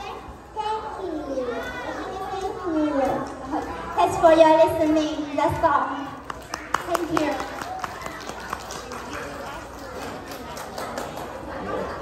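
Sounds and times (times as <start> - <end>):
small child talking: 0.0 - 3.0.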